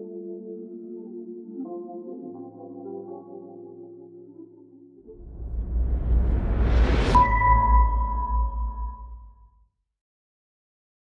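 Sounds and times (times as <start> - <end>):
deep bass rumble: 5.2 - 9.3
electronic ping tone: 7.2 - 9.3.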